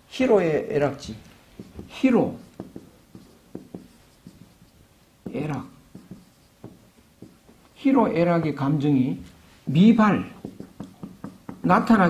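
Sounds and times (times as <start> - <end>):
marker writing on whiteboard: 1.0 - 8.6, 9.6 - 12.0.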